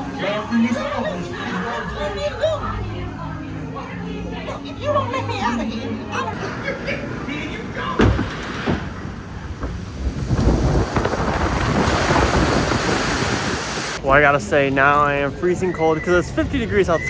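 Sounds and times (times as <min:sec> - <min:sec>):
water rushing: 0:06.4 - 0:14.0
wind rushing over microphone: 0:08.2 - 0:14.0.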